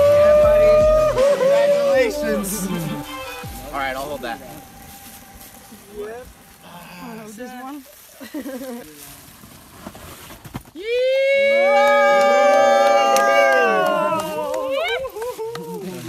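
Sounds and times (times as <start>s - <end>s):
group cheering: 0.0s - 7.2s, 10.8s - 16.0s
voices talking: 0.0s - 9.3s.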